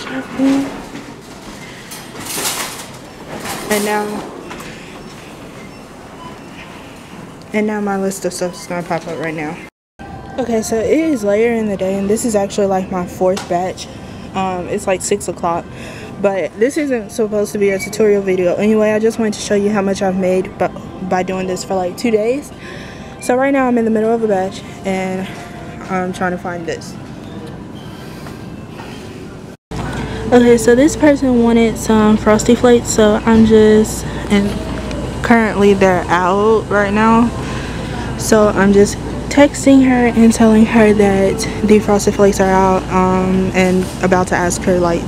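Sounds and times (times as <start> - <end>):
steady background noise: 0.0 - 45.0
shopping cart wheels rattling: 0.1 - 4.3.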